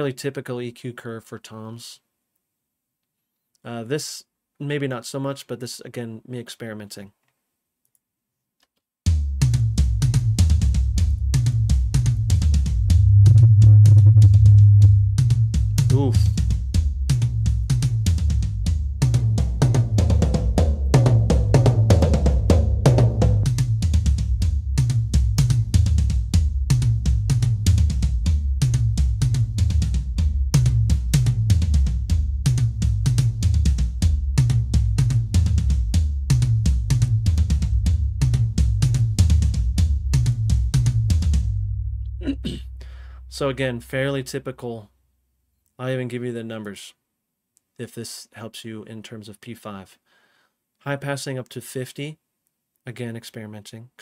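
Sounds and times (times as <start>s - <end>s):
acoustic drum kit playing: 9.1s - 44.3s.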